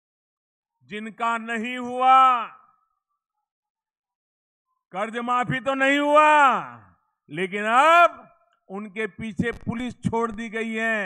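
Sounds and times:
man speaking: 0.9 - 2.6, 7.3 - 11.0.

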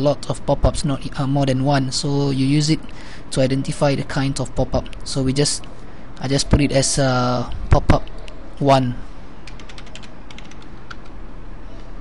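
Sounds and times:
steady low hum: 0.0 - 12.0
computer keyboard keys clicking: 9.4 - 11.2.

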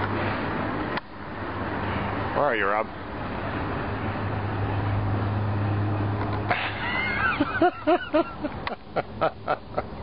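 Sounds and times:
car engine hum and tyre noise: 0.0 - 10.0.

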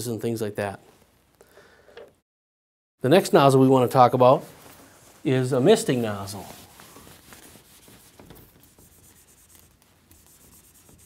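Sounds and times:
eraser rubbing on whiteboard: 5.9 - 11.0.

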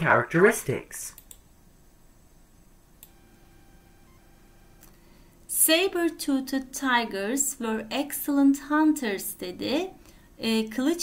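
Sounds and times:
faint steady hum: 0.0 - 11.0
computer mouse click: 1.2 - 1.5, 3.0 - 3.2.

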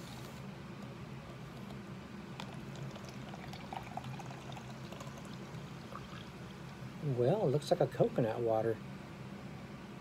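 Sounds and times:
steady low hum: 0.0 - 10.0
drink pouring into plastic cup: 2.4 - 6.7.

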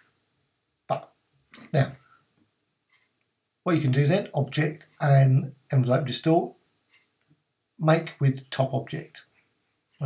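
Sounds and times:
person speaking: 0.9 - 2.0, 3.7 - 6.6, 7.8 - 9.3.

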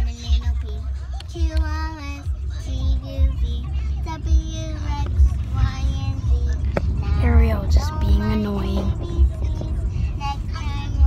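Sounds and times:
car rumble from inside cabin: 0.0 - 11.0
singing voices with music: 0.0 - 11.0.

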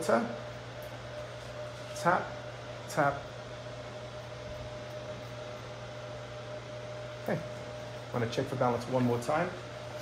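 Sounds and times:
low room hum and hiss: 0.0 - 10.0.

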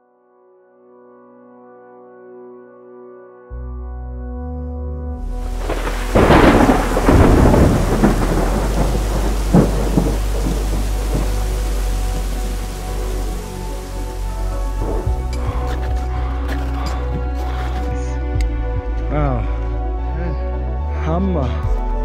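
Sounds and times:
low musical drone: 3.5 - 22.0
rain hissing: 5.2 - 15.7
thunder rumbling and cracking: 5.3 - 15.3.

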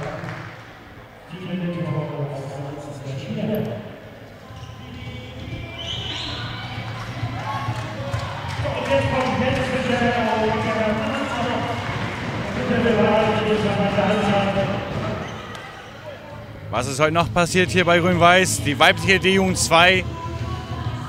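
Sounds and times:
people talking indistinctly: 12.6 - 20.2.

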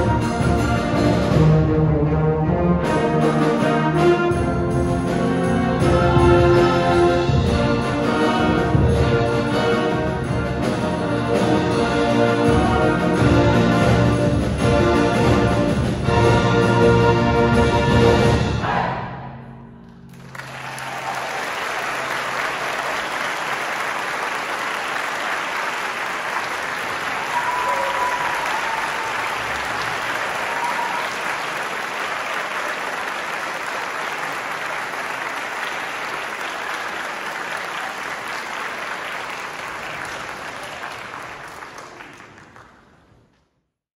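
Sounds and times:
audience applauding: 20.1 - 43.2.

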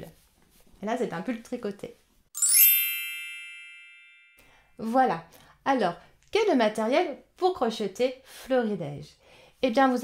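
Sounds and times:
bright ringing chime: 2.4 - 4.6.

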